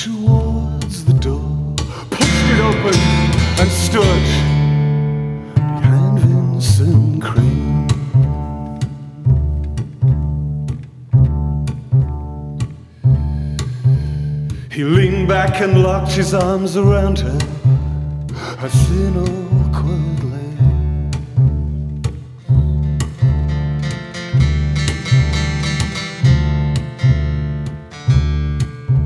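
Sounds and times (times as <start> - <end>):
person singing: 0.0 - 8.2, 14.6 - 17.8, 18.4 - 20.8
double bass line: 0.0 - 29.0
strummed acoustic guitar: 0.0 - 29.0.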